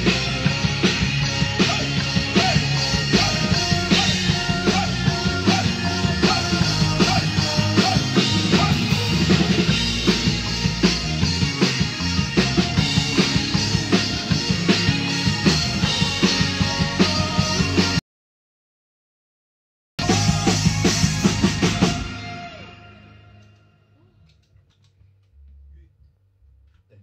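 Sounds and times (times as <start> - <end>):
drum kit steady beat: 0.0 - 18.0, 20.0 - 22.8
live band playing: 0.0 - 18.0, 20.0 - 23.0.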